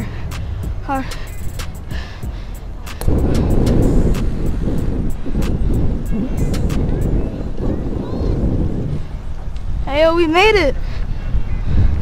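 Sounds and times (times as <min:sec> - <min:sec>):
road rumble: 0:00.0 - 0:12.0
wind buffeting microphone: 0:00.0 - 0:12.0.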